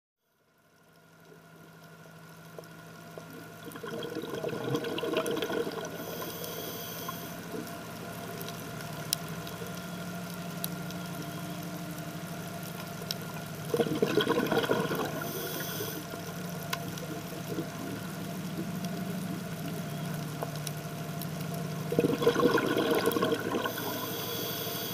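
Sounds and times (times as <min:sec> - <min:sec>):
engine humming underwater: 0:00.3 - 0:24.9
faint clicks: 0:06.1 - 0:13.6, 0:15.4 - 0:21.7.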